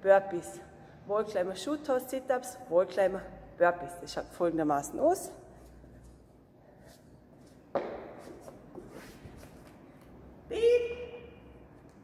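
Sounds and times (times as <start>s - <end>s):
taps and shuffling on mat: 6.8s - 10.2s
body thumping on exercise mat: 7.7s - 8.8s.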